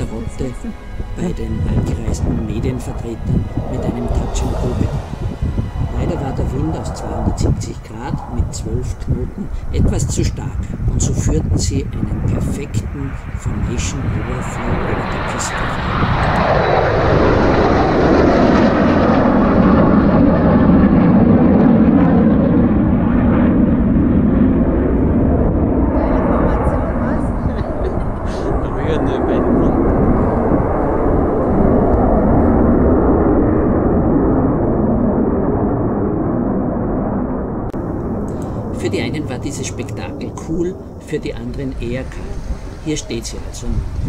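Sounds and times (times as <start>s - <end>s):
fighter jets roaring past: 0.0s - 44.0s.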